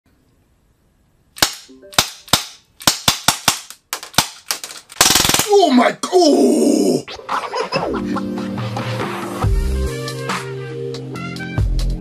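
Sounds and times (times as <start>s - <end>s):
airsoft pistol shots: 1.4s - 5.5s.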